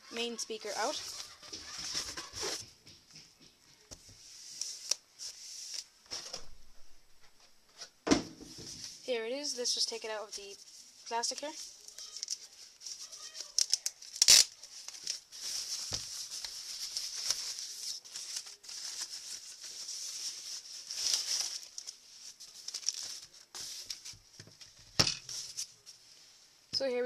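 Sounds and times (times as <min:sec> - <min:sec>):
plastic bag crinkling: 0:11.2 - 0:24.0.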